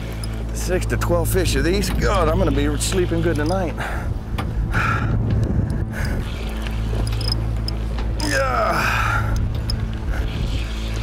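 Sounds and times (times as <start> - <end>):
boat engine humming: 0.0 - 11.0
wind buffeting microphone: 1.1 - 8.2, 8.8 - 11.0.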